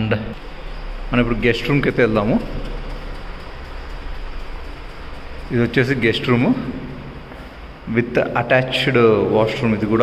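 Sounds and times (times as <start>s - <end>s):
steady hiss-like noise: 0.0s - 10.0s
low hum: 0.1s - 10.0s.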